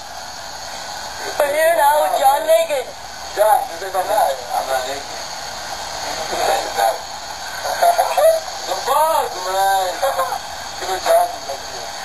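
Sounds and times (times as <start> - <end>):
people talking: 1.2 - 5.2, 6.0 - 12.0.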